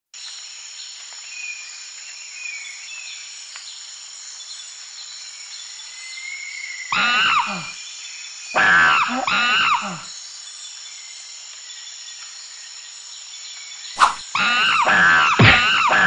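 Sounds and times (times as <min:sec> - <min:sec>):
insect chorus: 0:00.2 - 0:16.0
short whistling calls: 0:14.0 - 0:16.0.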